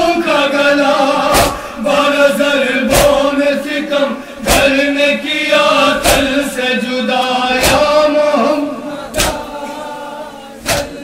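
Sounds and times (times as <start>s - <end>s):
men chanting a lament: 0.0s - 11.0s
chest-beating slaps: 1.3s - 1.7s, 2.9s - 3.3s, 4.4s - 4.9s, 6.0s - 6.4s, 7.6s - 8.0s, 9.1s - 9.5s, 10.6s - 11.0s.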